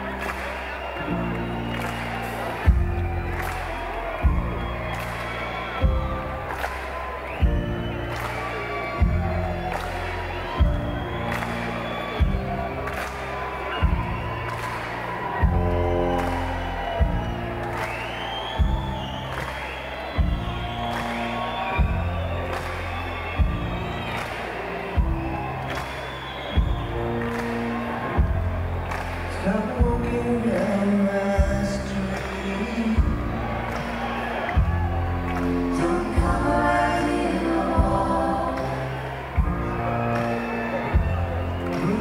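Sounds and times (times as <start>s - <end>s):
rock band playing: 0.0s - 36.7s, 37.6s - 42.0s
crowd cheering and whooping: 0.0s - 42.0s.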